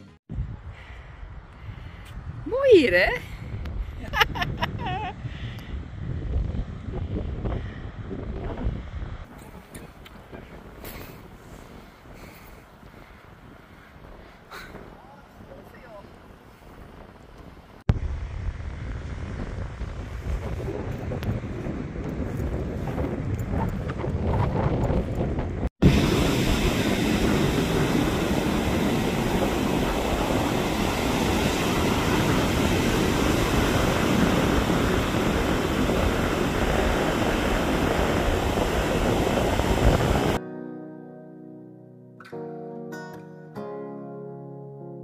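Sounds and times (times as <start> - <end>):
wind buffeting microphone: 0.2 - 40.4
ocean waves breaking: 25.8 - 40.4.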